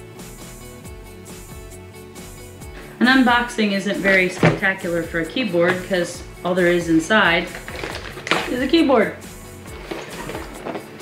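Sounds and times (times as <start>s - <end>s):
soft background music: 0.0s - 11.0s
plastic keyboard and box knocks: 4.1s - 4.7s, 7.4s - 8.6s.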